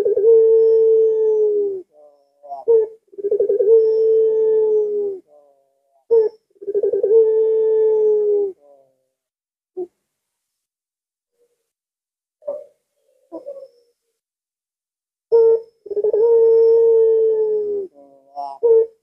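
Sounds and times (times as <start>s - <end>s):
dove cooing: 0.0s - 9.1s, 12.4s - 13.9s, 15.3s - 19.0s.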